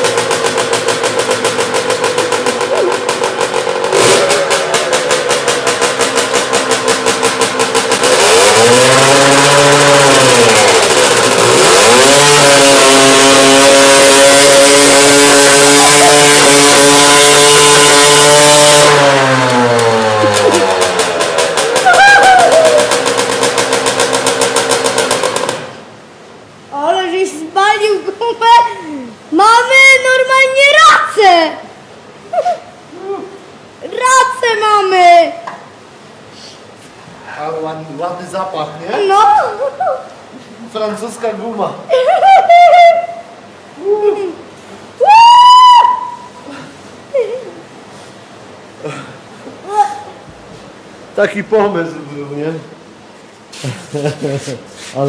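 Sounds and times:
dirt bike engine revving: 0.0 - 26.0.

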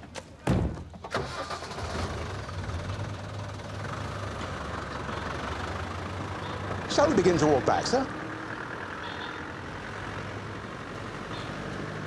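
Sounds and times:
vehicle engine idling: 1.3 - 12.0.

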